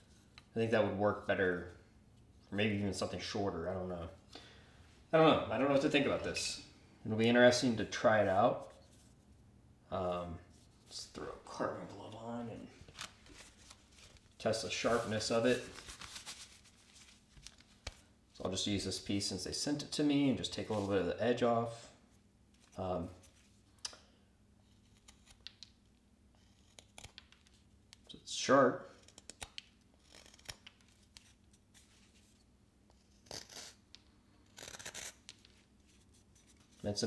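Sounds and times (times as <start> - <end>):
glove rustling: 10.6 - 18.1.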